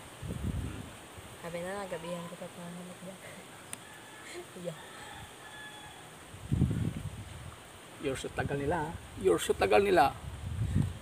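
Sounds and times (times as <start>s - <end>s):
low rumble on microphone: 0.2s - 1.0s, 10.2s - 11.0s.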